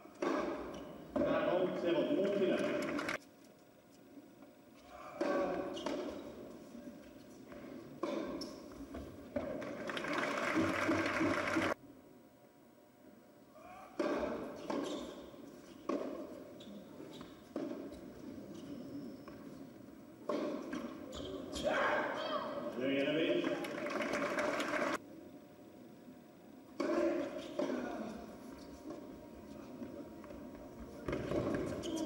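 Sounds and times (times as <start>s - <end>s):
crowd applauding: 2.6s - 3.2s, 9.6s - 11.8s, 23.4s - 25.0s.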